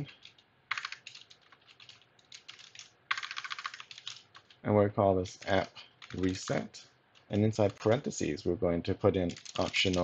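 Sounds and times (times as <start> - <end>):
computer keyboard typing: 0.0 - 4.6, 5.4 - 6.6, 9.2 - 10.0.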